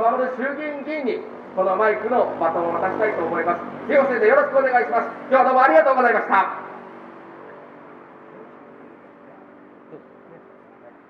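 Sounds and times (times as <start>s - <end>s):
street traffic: 0.0s - 11.0s
vehicle engine hum: 0.0s - 11.0s.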